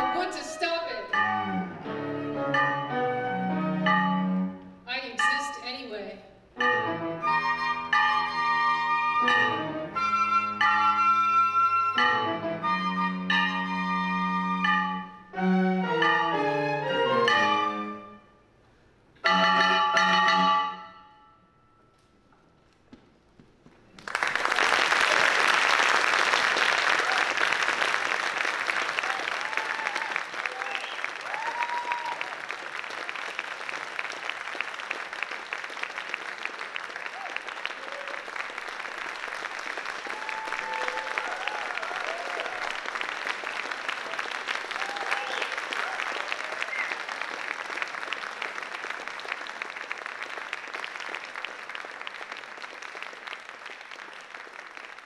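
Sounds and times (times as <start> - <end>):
audience applause: 24.0 - 55.0
scattered cheers: 28.8 - 32.5, 37.0 - 38.5, 40.0 - 43.0, 44.0 - 47.2.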